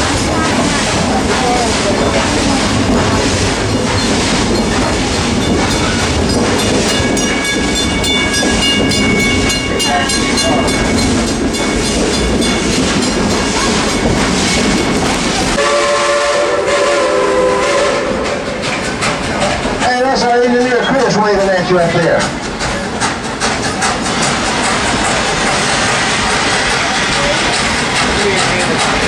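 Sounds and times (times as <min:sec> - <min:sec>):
wheels clickety-clack: 0:00.0 - 0:15.6, 0:17.5 - 0:29.0
steam train rumble: 0:00.0 - 0:29.0
multi-note steam whistle: 0:15.6 - 0:18.4.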